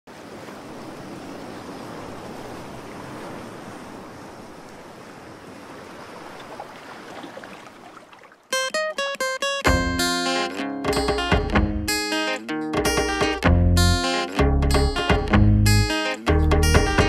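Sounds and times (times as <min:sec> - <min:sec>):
surf washing onto beach: 0:00.1 - 0:08.4.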